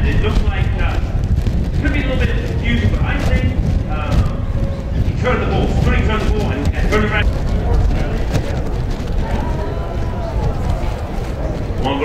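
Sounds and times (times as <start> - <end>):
indistinct voices talking: 0.0 - 12.0
steady low rumble: 0.0 - 12.0.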